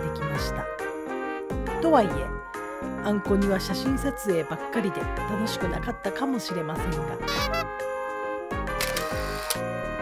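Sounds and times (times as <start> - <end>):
background music with steady beat: 0.0 - 10.0
camera shutter click: 8.8 - 9.7.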